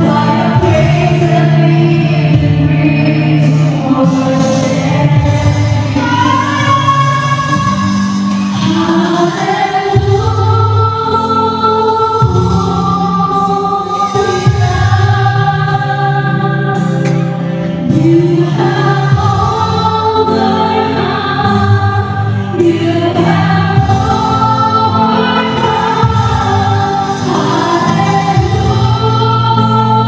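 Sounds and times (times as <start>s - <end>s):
electric bass guitar: 0.0s - 30.0s
voices singing held notes: 0.0s - 30.0s.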